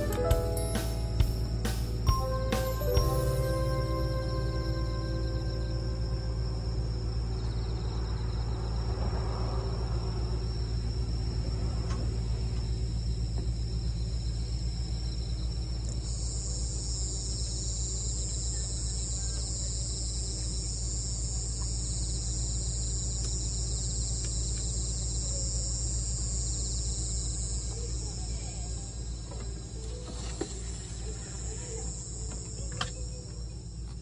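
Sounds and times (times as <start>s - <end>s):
crickets and insects chirring: 0.0s - 34.0s
steady low hum: 0.0s - 34.0s.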